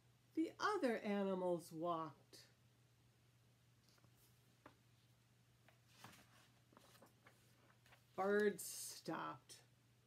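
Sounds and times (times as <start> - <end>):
faint steady hum: 0.0 - 10.0
book page turning: 5.7 - 8.5.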